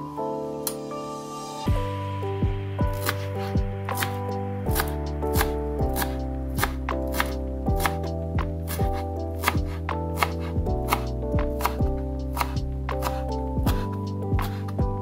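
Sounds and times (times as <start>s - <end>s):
background music: 0.0s - 15.0s
knife chopping on cutting board: 2.9s - 14.8s.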